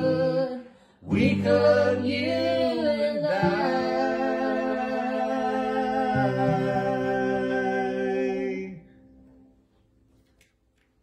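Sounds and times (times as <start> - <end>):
man and woman singing: 0.0 - 8.9
acoustic guitars: 0.0 - 11.0.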